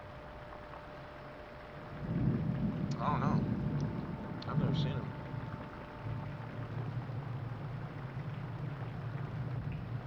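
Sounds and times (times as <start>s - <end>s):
faint steady hum: 0.0s - 10.0s
low rumbling noise: 0.0s - 10.0s.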